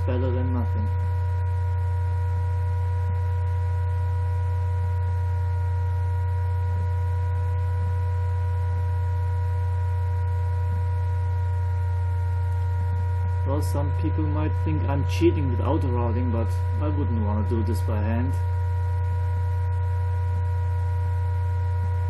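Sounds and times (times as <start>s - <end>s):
laptop cooling fan hum: 0.0s - 22.0s
thin steady whining tones: 0.0s - 22.0s.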